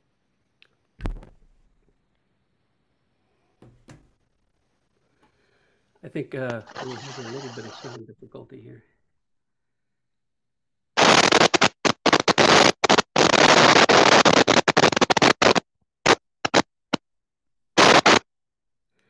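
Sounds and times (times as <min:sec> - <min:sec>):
harsh static noise: 0:06.1 - 0:08.1, 0:11.0 - 0:16.7, 0:17.8 - 0:18.3.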